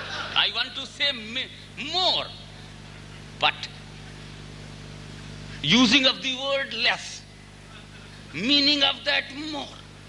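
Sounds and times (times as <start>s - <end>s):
low electrical hum with hiss: 0.0s - 10.0s.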